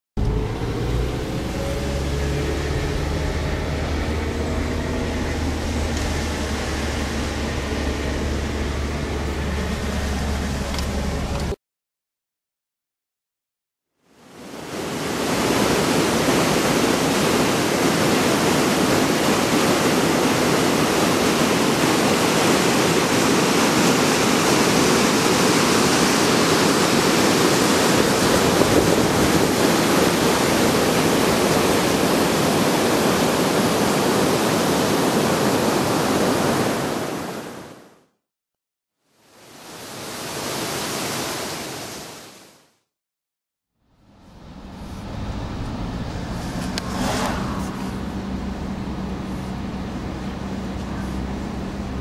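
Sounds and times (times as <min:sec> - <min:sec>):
fast-flowing water rushing: 0:14.2 - 0:37.8, 0:39.2 - 0:42.6.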